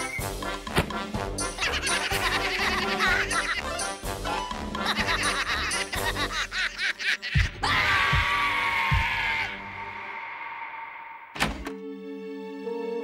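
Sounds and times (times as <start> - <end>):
gentle music: 0.0 - 7.6, 11.5 - 13.0
cartoon laughter snickering: 1.4 - 3.9, 4.7 - 7.6.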